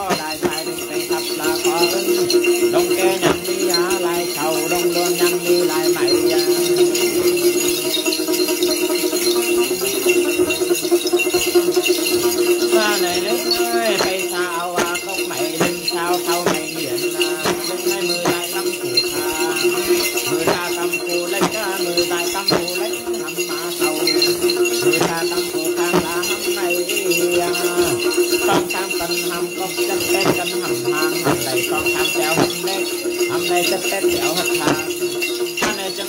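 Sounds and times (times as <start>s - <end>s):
women chanting: 0.0s - 6.6s, 12.6s - 35.0s
person singing: 0.0s - 8.1s, 9.2s - 10.8s, 11.4s - 36.0s
jingle bells shaken by hand: 0.0s - 36.0s.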